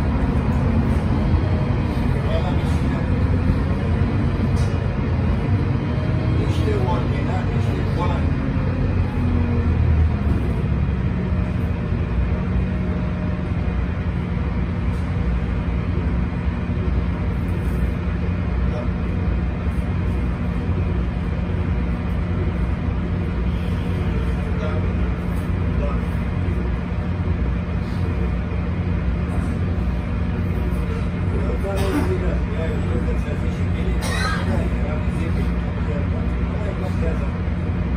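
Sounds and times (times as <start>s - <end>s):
bus engine drone: 0.0s - 37.9s.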